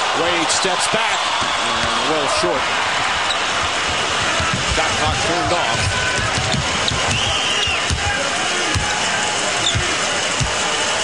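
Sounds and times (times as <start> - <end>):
arena crowd noise: 0.0 - 11.0
basketball dribbling on hardwood: 3.8 - 8.1, 9.7 - 10.6.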